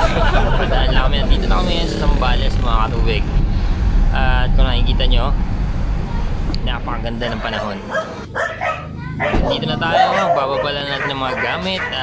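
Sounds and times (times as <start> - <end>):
car road rumble: 0.0 - 12.0.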